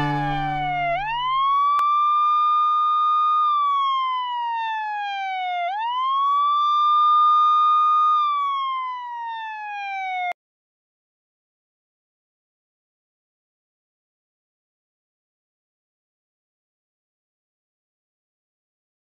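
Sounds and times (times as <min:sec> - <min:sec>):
wailing siren: 0:00.0 - 0:10.4.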